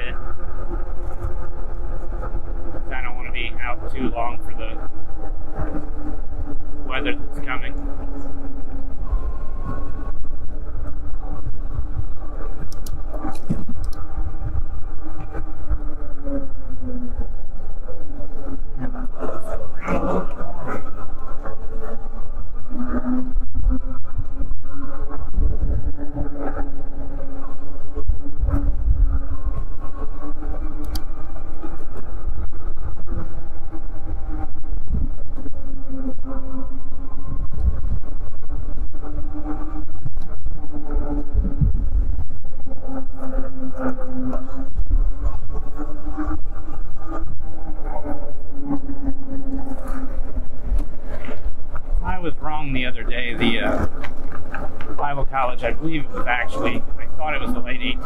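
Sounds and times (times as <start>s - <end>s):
electric motor whining: 0.0s - 58.0s
wind rumble on microphone: 0.0s - 58.0s.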